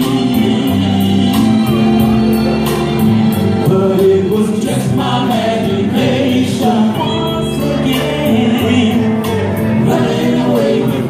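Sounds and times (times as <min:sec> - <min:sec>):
male vocal group singing: 0:00.0 - 0:02.4, 0:03.4 - 0:11.0
amplified instrumental backing: 0:00.0 - 0:11.0.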